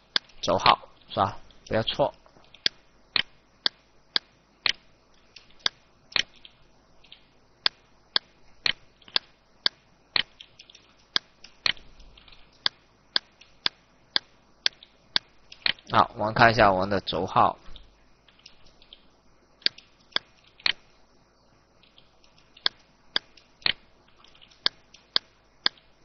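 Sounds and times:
computer mouse clicking: 2.4s - 16.0s, 17.8s - 20.9s, 21.8s - 25.9s.

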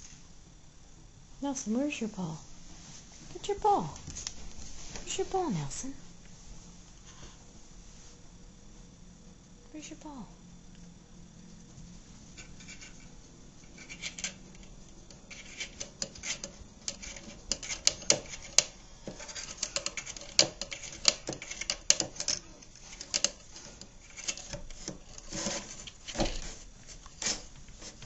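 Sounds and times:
kitten claws scratching wood: 12.3s - 28.0s.

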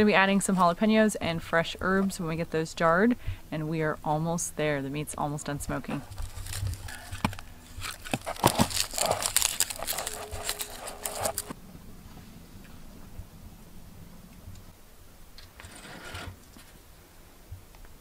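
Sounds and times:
faint low background hum: 0.0s - 18.0s
garlic skins crackling and tearing: 5.9s - 11.5s.

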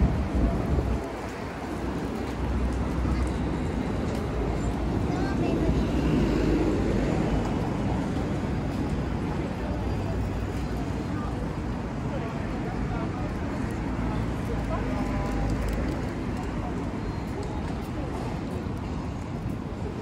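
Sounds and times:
road traffic rumbling: 0.0s - 20.0s.

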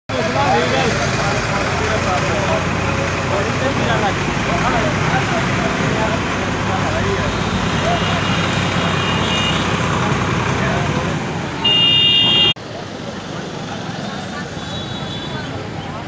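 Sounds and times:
many voices talking: 0.1s - 16.0s
traffic noise: 0.1s - 16.0s
vehicle horn: 7.2s - 9.8s, 11.6s - 12.6s.

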